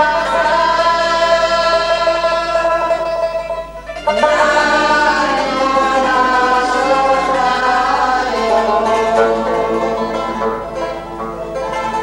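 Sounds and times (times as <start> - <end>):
plucked string instruments: 0.0 - 12.0
voices singing held note: 0.0 - 12.0.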